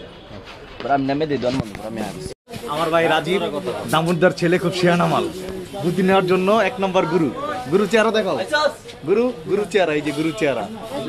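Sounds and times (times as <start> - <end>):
people talking over one another: 0.9 - 11.0.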